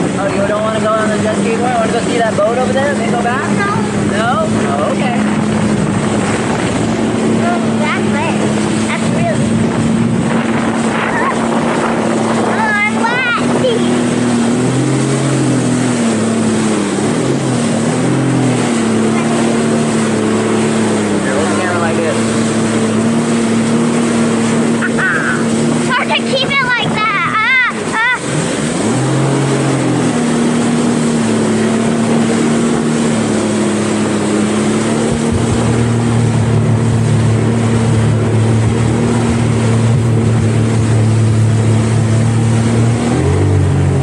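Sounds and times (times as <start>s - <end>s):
jet ski engine droning: 0.0s - 44.0s
wind and spray rushing: 0.0s - 44.0s.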